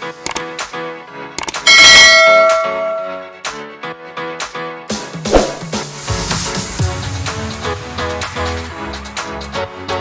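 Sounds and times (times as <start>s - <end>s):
background music: 0.0s - 10.0s
notification bell ding: 1.7s - 3.2s.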